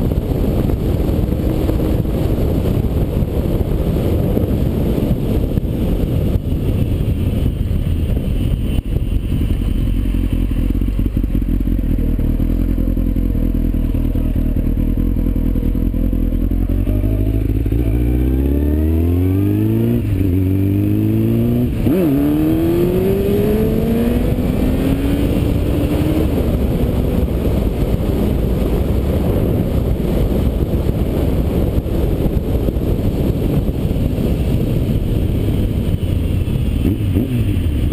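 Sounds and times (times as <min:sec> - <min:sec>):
motorcycle engine accelerating: 0:00.0 - 0:37.9
wind noise: 0:00.0 - 0:37.9.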